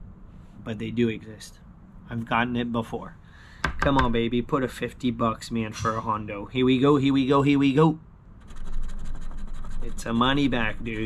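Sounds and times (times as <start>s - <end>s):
coin scratching lottery ticket: 8.4s - 11.0s.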